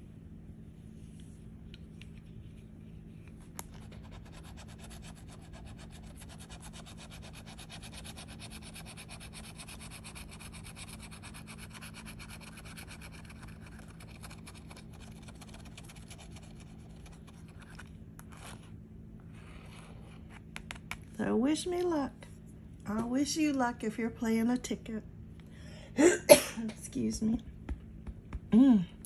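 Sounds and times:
scratching lottery ticket: 3.6 - 18.7.

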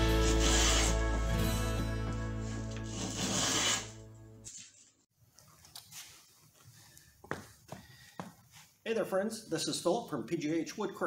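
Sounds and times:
hand plane rasping on wood: 0.0 - 1.0, 2.8 - 3.9
background music: 0.0 - 4.5.

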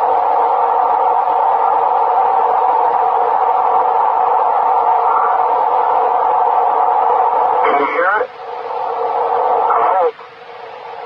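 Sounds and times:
droning hum over radio: 0.0 - 11.0
radio hiss: 4.6 - 11.0.

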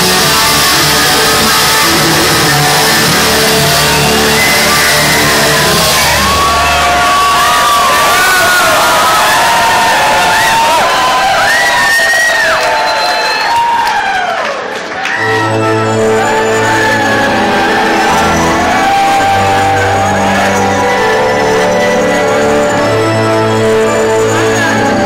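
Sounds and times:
rock band chord ringing: 0.0 - 8.3
crowd cheering and whooping: 0.0 - 25.0.

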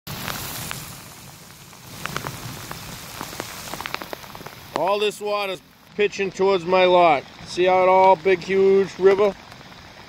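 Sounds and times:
heavy rain on ground: 0.1 - 10.0
raindrops ticking close by: 0.1 - 10.0.

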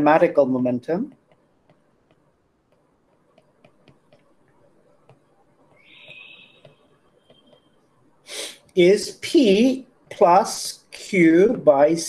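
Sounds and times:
brief hiss: 8.3 - 8.6.

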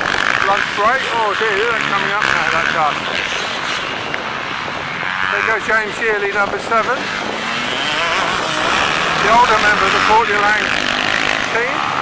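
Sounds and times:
motocross bike engines: 0.0 - 12.0.

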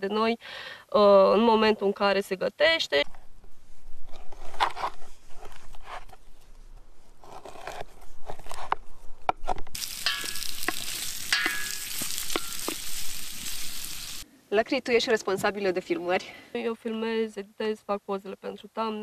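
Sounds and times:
knife slicing on wooden board: 7.2 - 8.8
fat sizzling with sharp pops: 9.7 - 14.2
wooden spoon stirring: 9.8 - 14.2.

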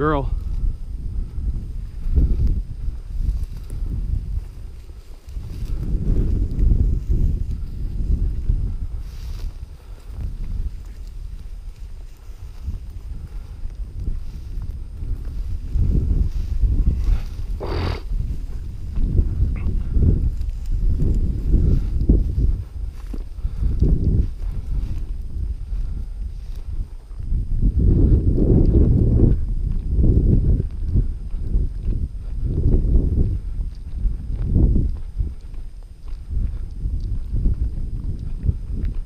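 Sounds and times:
wind on microphone: 0.0 - 39.0
footsteps on frozen grass: 0.3 - 39.0.

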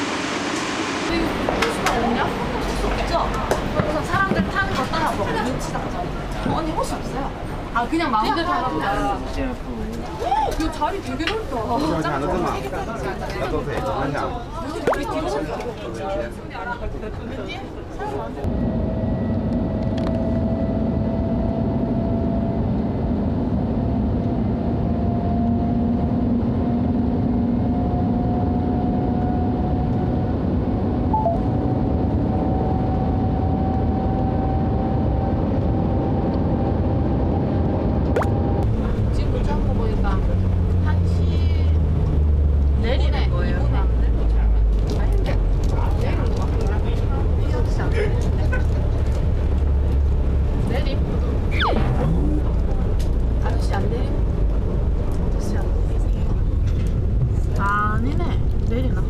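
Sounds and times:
train hum stepping down: 0.0 - 2.7.

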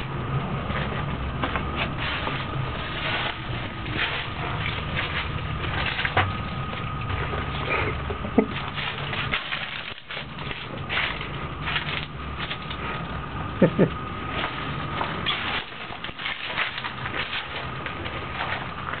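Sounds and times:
steady low hum: 0.0 - 19.0
footsteps crunching on gritty floor: 0.6 - 7.7.

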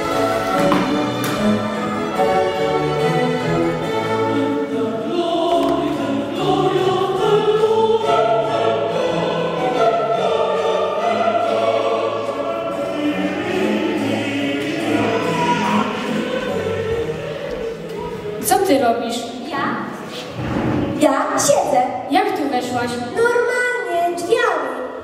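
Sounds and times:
choir singing held notes: 0.0 - 18.5
orchestral accompaniment: 0.0 - 18.9.

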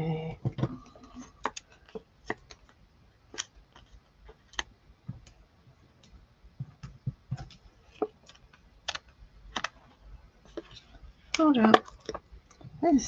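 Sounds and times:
fingers clicking and tapping cardstock: 1.3 - 2.7, 6.6 - 9.8.

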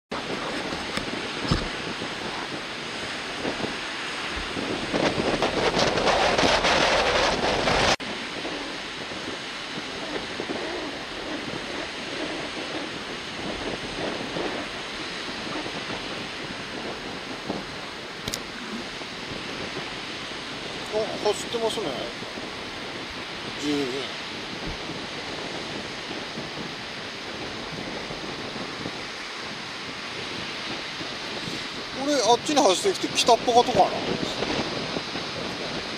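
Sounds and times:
rough surf: 0.1 - 35.9
wind on microphone: 0.1 - 35.9.

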